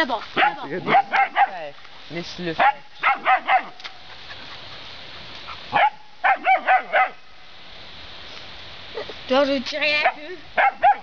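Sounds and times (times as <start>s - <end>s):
puppy barking: 0.4s - 1.7s, 2.6s - 3.8s, 5.5s - 7.2s, 10.0s - 11.0s.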